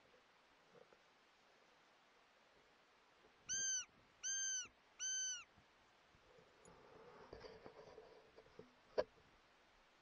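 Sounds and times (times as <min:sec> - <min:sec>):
high-pitched calls: 0:03.5 - 0:05.5.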